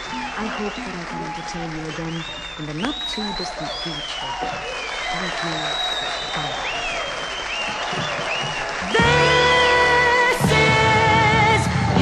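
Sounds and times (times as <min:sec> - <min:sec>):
audience applauding: 0:00.0 - 0:12.0
loud music: 0:08.9 - 0:12.0.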